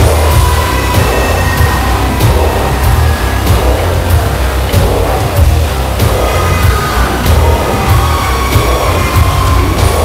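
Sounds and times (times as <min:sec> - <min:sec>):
drum and cymbal hits: 0:00.0 - 0:10.0
heavy metal band playing live: 0:00.0 - 0:10.0.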